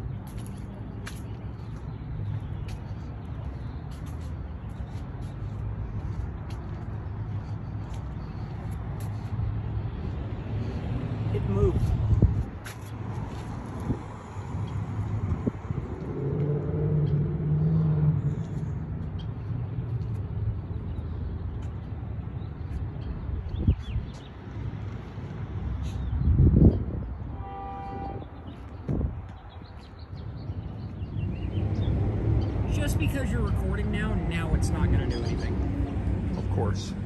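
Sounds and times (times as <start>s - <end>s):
low street rumble: 0.0s - 37.0s
horn-like tone: 27.3s - 28.3s.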